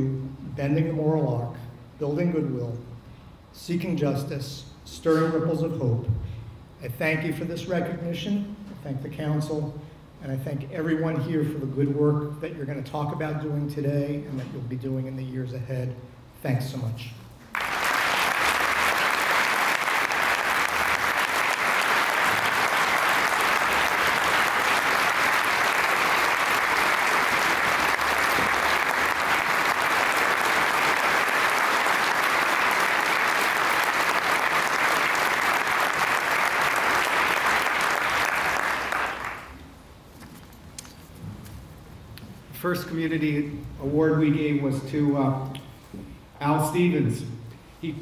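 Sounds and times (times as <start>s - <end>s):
audience applauding: 17.5s - 39.6s.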